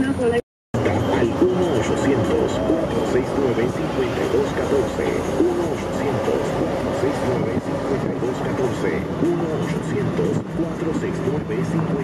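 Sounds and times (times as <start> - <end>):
car road and engine noise: 0.0 - 12.0
indistinct voices talking: 0.0 - 12.0
low hum: 0.8 - 12.0.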